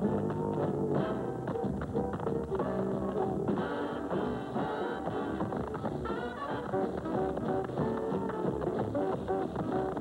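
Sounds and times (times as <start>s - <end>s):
band music: 0.0s - 10.0s
tap shoes tapping on hard floor: 6.6s - 10.0s.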